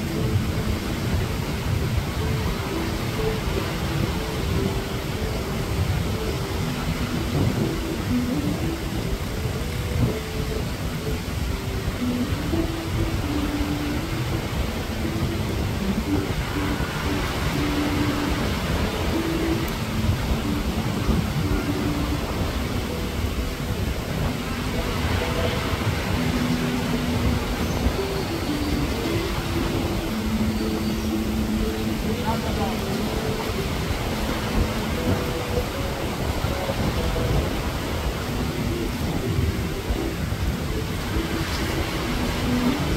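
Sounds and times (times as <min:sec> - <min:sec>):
surf rumble: 0:00.0 - 0:42.9
wind on microphone: 0:00.0 - 0:42.9.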